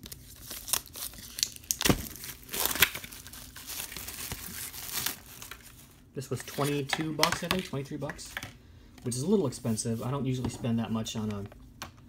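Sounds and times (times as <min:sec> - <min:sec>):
plastic shrink wrap crinkling and tearing: 0:00.0 - 0:07.7.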